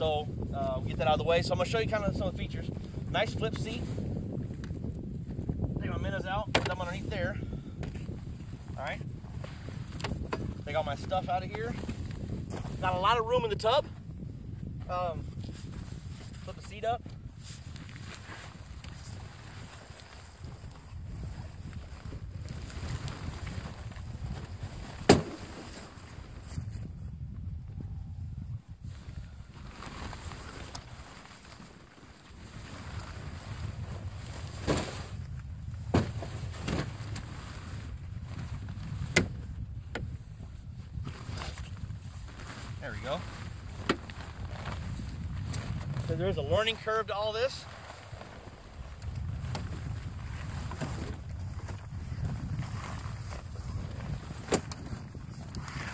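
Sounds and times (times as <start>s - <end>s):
wind rumbling on microphone: 0.0s - 55.9s
fabric and frame handling: 15.4s - 26.8s, 41.0s - 55.9s.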